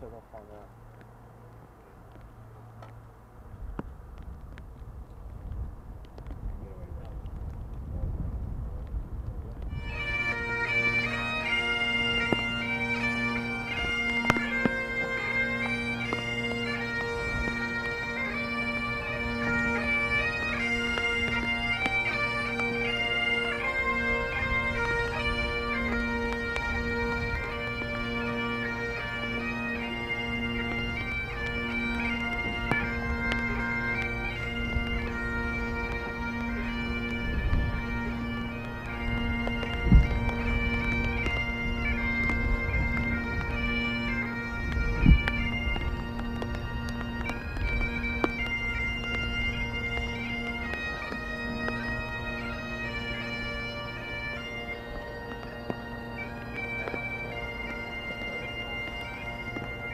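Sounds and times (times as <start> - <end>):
bagpipe chanter melody: 9.6 - 59.9
bagpipe drones: 9.6 - 59.9.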